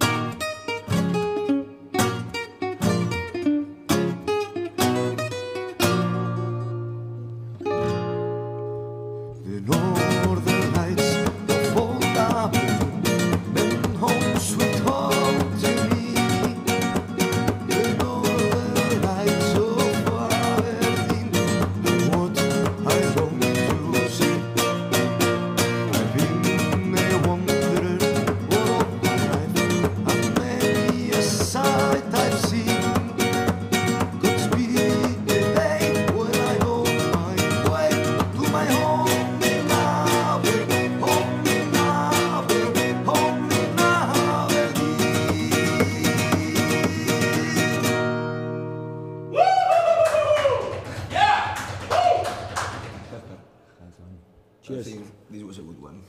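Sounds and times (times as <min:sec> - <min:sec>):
gypsy jazz guitar: 0:00.0 - 0:49.3
nylon-string classical guitar: 0:00.0 - 0:49.3.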